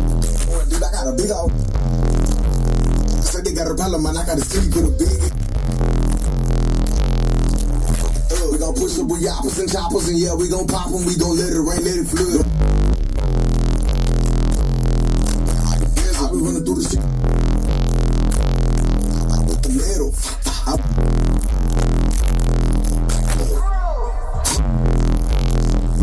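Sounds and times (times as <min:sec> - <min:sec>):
bass-heavy electronic music: 0:00.0 - 0:26.0.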